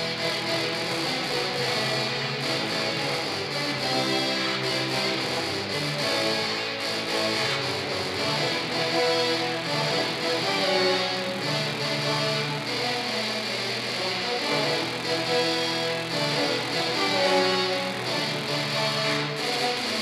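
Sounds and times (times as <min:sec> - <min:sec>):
low brass ensemble playing: 0:00.0 - 0:20.0.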